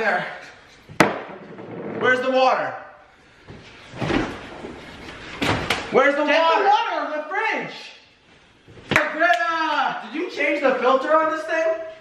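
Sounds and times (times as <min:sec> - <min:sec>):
kitchen thump: 0:01.0 - 0:02.0.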